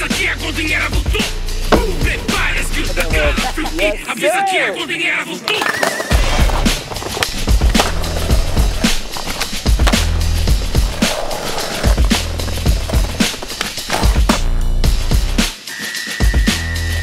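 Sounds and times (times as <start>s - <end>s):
electronic music with deep bass: 0.0s - 4.0s
skateboard rolling on stone: 4.9s - 15.5s.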